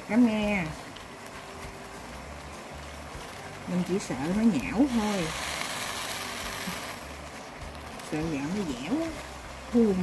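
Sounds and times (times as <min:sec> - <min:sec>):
steamer pot boiling: 0:00.0 - 0:10.0.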